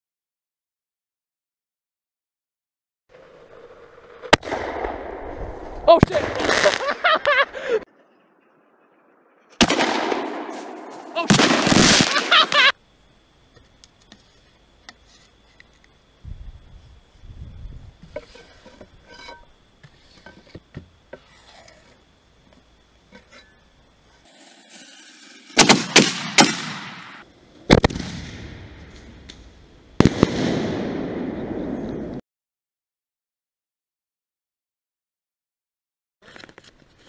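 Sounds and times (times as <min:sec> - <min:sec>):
fireworks banging: 0:05.9 - 0:07.4, 0:09.6 - 0:12.7, 0:24.2 - 0:29.4
firework hissing tail: 0:09.7 - 0:12.7, 0:24.2 - 0:27.2.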